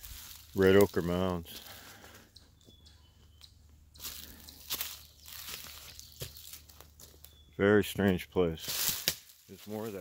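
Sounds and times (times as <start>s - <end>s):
footsteps on dry leaves: 0.0s - 2.3s, 3.9s - 7.5s, 8.1s - 10.0s.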